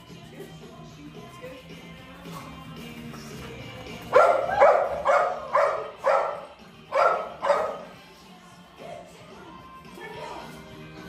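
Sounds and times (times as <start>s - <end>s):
small dog barking: 4.1s - 7.9s.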